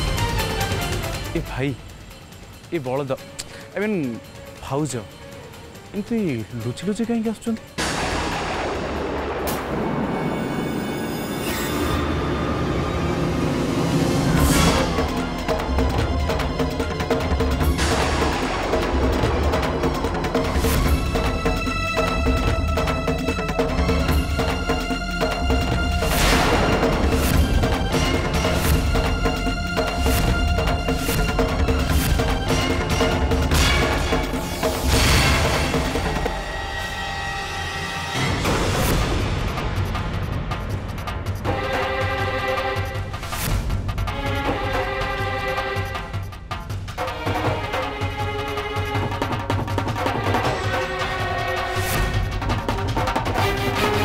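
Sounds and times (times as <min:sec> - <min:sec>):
low drone: 0:07.8 - 0:40.3.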